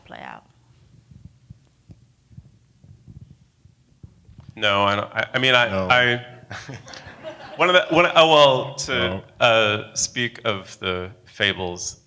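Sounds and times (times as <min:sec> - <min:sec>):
faint steady hum: 0:00.0 - 0:12.0
microphone handling thumps: 0:00.7 - 0:04.9.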